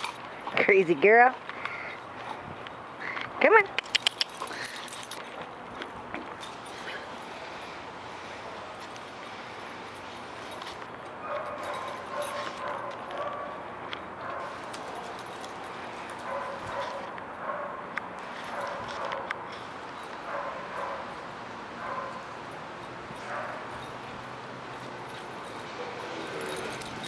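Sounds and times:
dogs barking while playing: 11.2 - 19.6, 20.2 - 22.5, 23.1 - 24.1.

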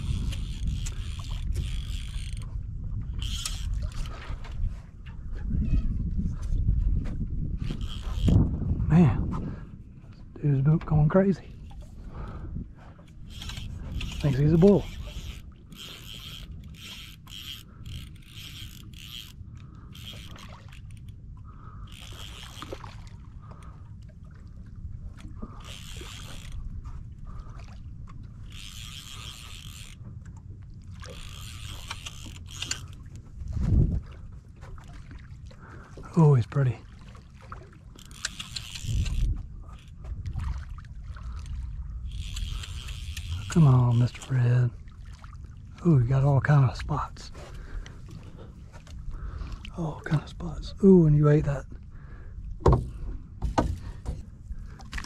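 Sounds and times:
fly line rasping through rod guides: 0.0 - 2.5, 3.1 - 4.6, 7.6 - 8.4, 13.0 - 21.2, 21.8 - 23.1, 25.6 - 26.7, 28.3 - 30.0, 31.0 - 33.2, 37.9 - 40.0, 41.4 - 44.4
water against boat: 0.0 - 55.0
wind: 0.0 - 55.0.

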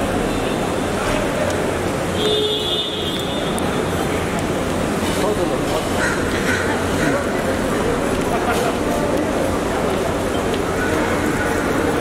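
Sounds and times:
airport terminal low hum: 0.0 - 12.0.

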